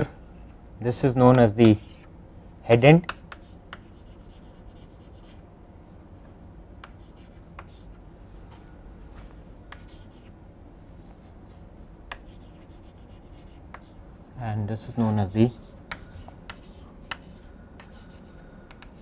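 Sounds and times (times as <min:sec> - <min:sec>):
low room hum: 0:00.0 - 0:19.0
chalk scratching on chalkboard: 0:01.3 - 0:02.1, 0:03.1 - 0:05.4, 0:06.1 - 0:08.0, 0:09.8 - 0:10.3, 0:12.2 - 0:14.0, 0:14.9 - 0:19.0
chalk tapping on board: 0:01.3 - 0:02.1, 0:03.0 - 0:05.3, 0:06.8 - 0:07.9, 0:09.7 - 0:10.3, 0:12.1 - 0:14.0, 0:15.5 - 0:19.0.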